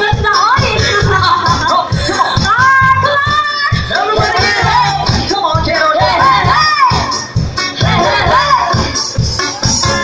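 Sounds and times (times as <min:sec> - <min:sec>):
live band dance music: 0:00.0 - 0:10.0
people shouting and singing: 0:00.0 - 0:10.0.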